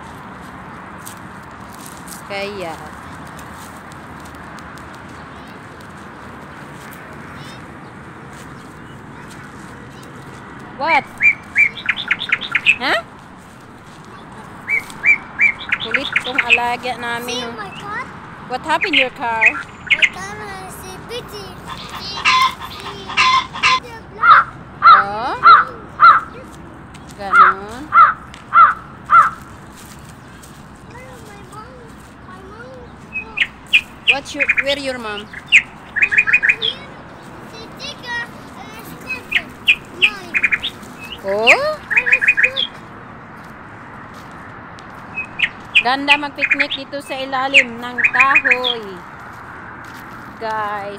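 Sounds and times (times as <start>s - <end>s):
small birds chirping: 0.0s - 50.9s
loud rising bird call: 21.4s - 26.4s.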